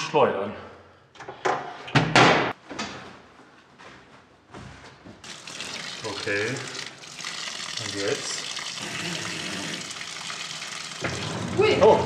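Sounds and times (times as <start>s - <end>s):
tap water running into tub: 5.2s - 12.0s.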